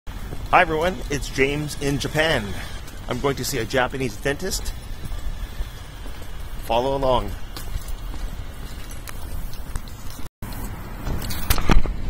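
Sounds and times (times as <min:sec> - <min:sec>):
footsteps on pavement: 0:00.1 - 0:10.8.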